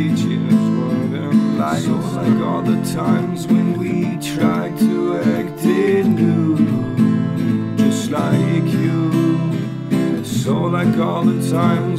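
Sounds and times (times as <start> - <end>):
acoustic guitar strumming: 0.0 - 11.9.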